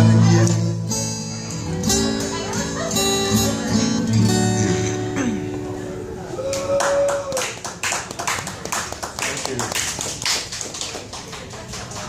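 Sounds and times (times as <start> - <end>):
audience clapping: 6.4 - 12.0.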